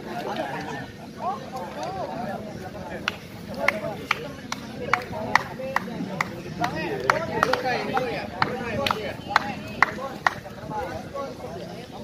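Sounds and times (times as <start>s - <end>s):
group of people talking: 0.0s - 12.0s
sharp clap-like clicks: 3.0s - 10.5s.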